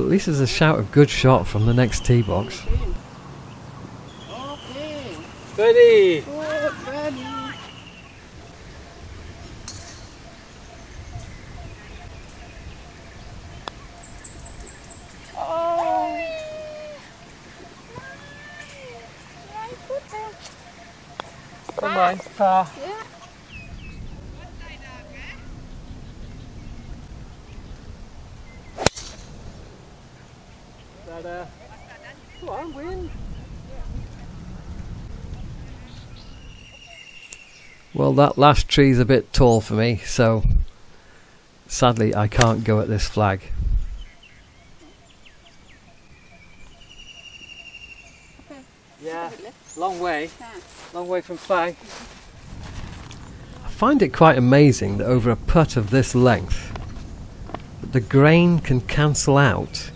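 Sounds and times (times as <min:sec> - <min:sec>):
wind rumble on microphone: 0:01.4 - 0:03.1, 0:08.2 - 0:15.4, 0:23.3 - 0:30.0, 0:32.2 - 0:36.8, 0:40.4 - 0:40.7, 0:43.4 - 0:44.4, 0:52.1 - 0:59.9
faint bird calls: 0:01.9 - 0:27.8, 0:28.5 - 0:38.0, 0:43.9 - 0:51.0.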